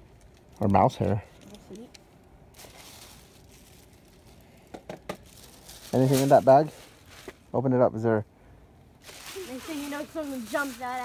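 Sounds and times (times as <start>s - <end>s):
plastic bag crinkling: 0.0s - 7.4s, 9.0s - 11.0s
faint background hiss: 0.0s - 11.0s.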